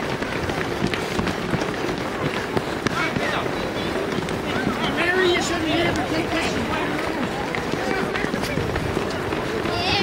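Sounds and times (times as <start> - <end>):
people talking and calling: 0.0 - 10.0
runners' footsteps on tarmac: 0.0 - 10.0.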